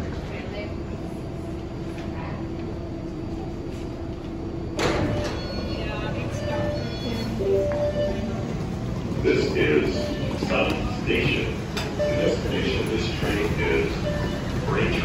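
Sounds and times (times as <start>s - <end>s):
subway car humming: 0.0s - 15.0s.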